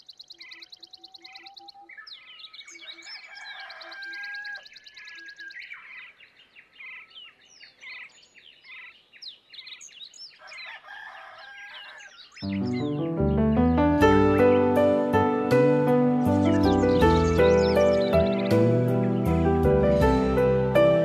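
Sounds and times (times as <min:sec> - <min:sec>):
birds chirping and trilling: 0:00.0 - 0:21.0.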